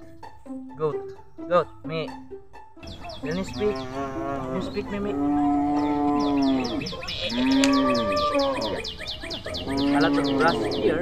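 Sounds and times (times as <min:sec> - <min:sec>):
high chirps: 0:02.8 - 0:11.0
goat bleating: 0:03.2 - 0:08.8, 0:09.7 - 0:11.0.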